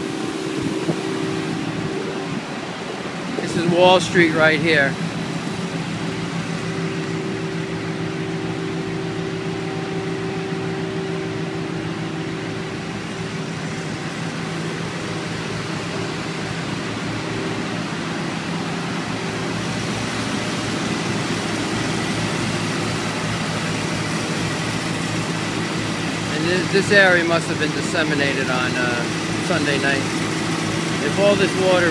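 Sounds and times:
machinery engine drone: 0:00.0 - 0:31.9.

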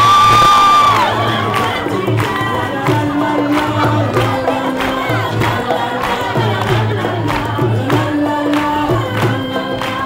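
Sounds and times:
hand drum beat: 0:00.0 - 0:10.0
many voices singing along: 0:00.4 - 0:10.0.

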